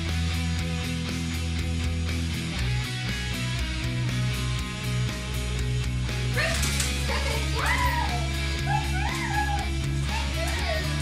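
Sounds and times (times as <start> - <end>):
rock music with guitar: 0.0 - 11.0.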